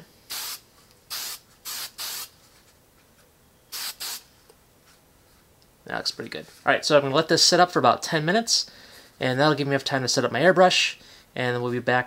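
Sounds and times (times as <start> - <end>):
aerosol spray hisses: 0.3 - 2.3, 3.7 - 4.3.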